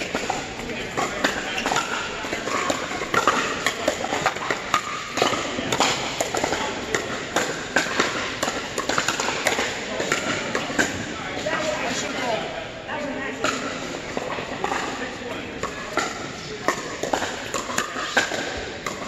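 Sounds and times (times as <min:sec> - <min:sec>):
paddles hitting plastic ball: 0:00.0 - 0:11.6, 0:15.6 - 0:19.0
background chatter: 0:00.0 - 0:19.0.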